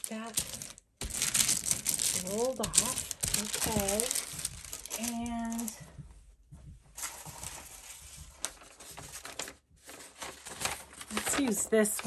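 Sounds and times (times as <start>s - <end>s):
paper sheets rustling: 0.0s - 5.8s, 7.0s - 12.0s.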